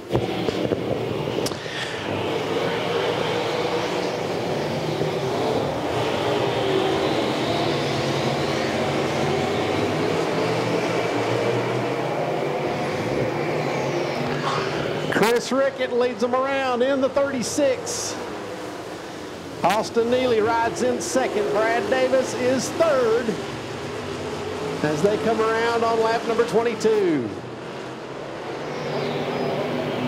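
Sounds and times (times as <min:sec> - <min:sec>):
race car engines at high revs: 0:00.0 - 0:30.0.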